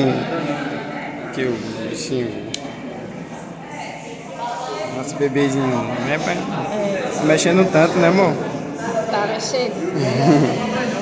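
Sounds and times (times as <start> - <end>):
indistinct speech and chatter: 0.0 - 11.0.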